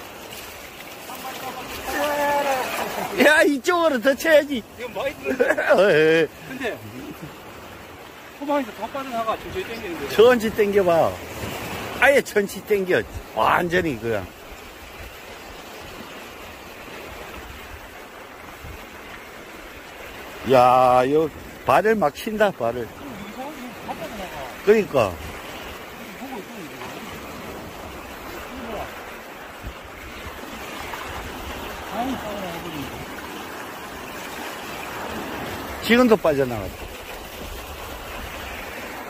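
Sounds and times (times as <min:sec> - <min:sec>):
seawater swishing around legs: 0:00.0 - 0:03.4
small waves lapping: 0:00.0 - 0:39.0.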